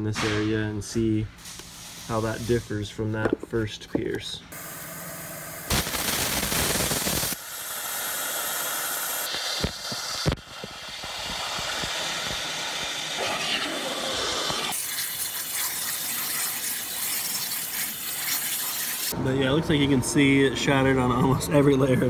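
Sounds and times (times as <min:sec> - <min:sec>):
waterjet hissing: 0:04.6 - 0:19.2.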